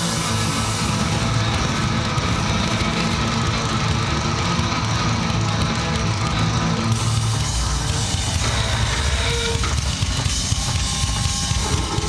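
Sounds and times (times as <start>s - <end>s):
drum kit played fast: 0.0s - 12.0s.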